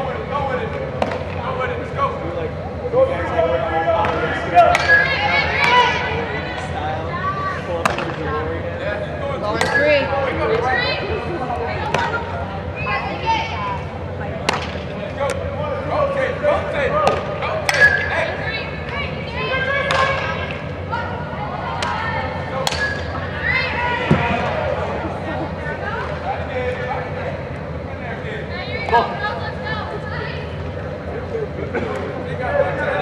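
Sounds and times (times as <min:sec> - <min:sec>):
players calling out: 0:00.1 - 0:33.0
bat hitting softballs: 0:04.0 - 0:05.9, 0:14.4 - 0:14.9, 0:22.6 - 0:23.1.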